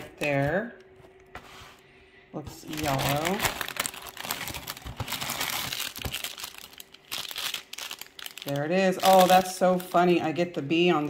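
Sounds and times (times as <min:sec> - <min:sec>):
plastic crinkling and rustling: 0:02.5 - 0:11.0.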